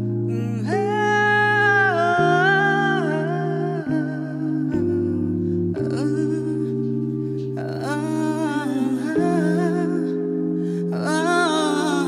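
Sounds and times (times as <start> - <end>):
soft wavering lead melody: 0.0 - 12.0
sustained keyboard chords: 0.0 - 12.0.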